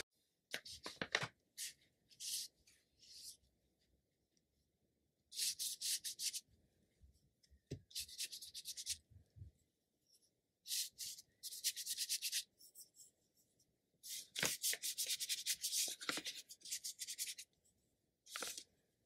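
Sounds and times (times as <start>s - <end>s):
brush scratching on paper: 10.7s - 13.1s.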